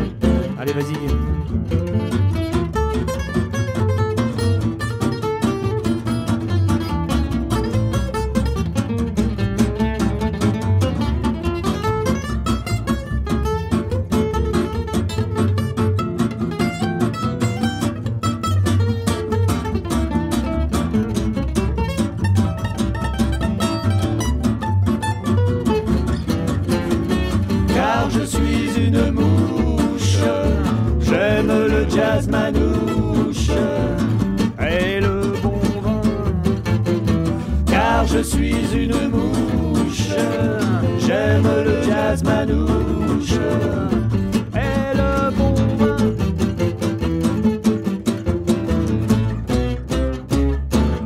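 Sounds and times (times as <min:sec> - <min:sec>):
plucked double bass: 0:00.0 - 0:51.0
strummed rhythm guitar: 0:00.0 - 0:51.0.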